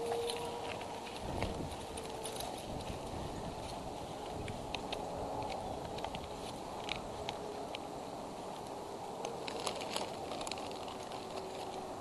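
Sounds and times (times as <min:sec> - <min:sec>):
rustling: 0:00.0 - 0:12.0.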